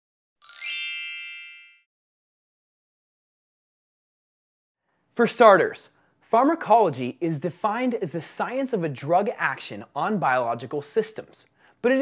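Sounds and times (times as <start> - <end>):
bright high-pitched chime: 0.4 - 1.9.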